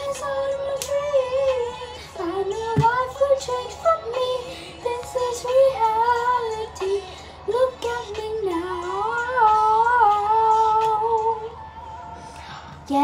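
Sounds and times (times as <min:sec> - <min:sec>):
woman singing wordless melody: 0:00.0 - 0:13.0.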